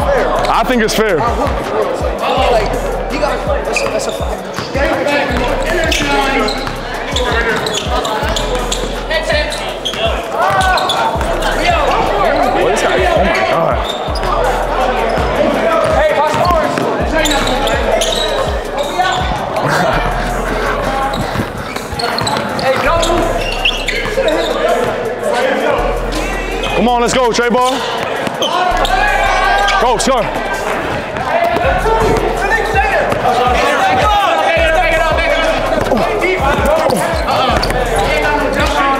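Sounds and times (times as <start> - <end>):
voices in echoing hall: 0.0 - 38.9.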